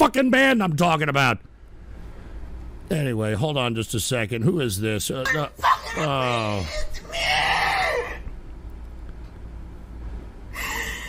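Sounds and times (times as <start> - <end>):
shrill wailing scream: 5.5 - 8.3.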